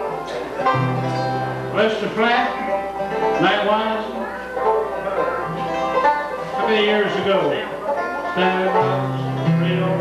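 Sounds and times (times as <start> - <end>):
acoustic guitar: 0.0 - 10.0
banjo: 0.0 - 10.0
upright bass: 0.0 - 10.0.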